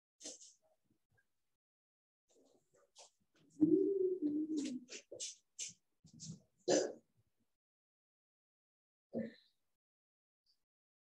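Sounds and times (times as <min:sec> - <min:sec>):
person clearing throat: 0:06.7 - 0:07.0.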